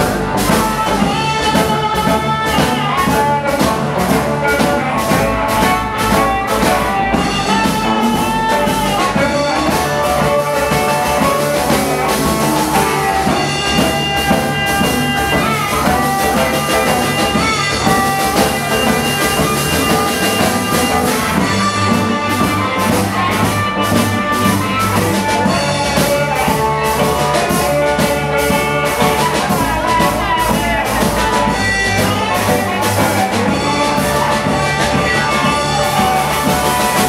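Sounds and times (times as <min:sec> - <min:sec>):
amplified harmonica: 0:00.0 - 0:37.0
drum kit: 0:00.0 - 0:37.0
electric guitar: 0:00.0 - 0:37.0
upright double bass: 0:00.0 - 0:37.0.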